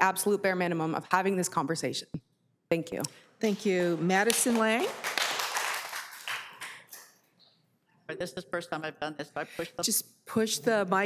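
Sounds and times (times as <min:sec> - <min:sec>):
audience applause: 0:04.4 - 0:06.9.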